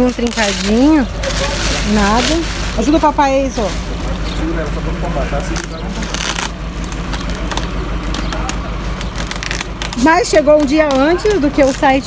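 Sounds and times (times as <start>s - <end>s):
bubble wrap rustling and crackling: 0.0s - 12.0s.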